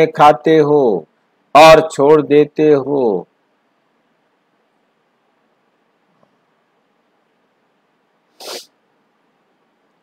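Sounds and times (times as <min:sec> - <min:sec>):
man's sharp intake of breath: 0:08.4 - 0:08.8.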